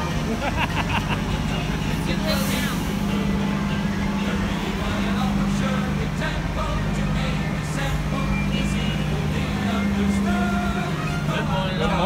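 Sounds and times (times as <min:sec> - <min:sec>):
buses idling: 0:00.0 - 0:12.0
scattered voices: 0:00.3 - 0:12.0
air brake hiss: 0:02.3 - 0:03.1.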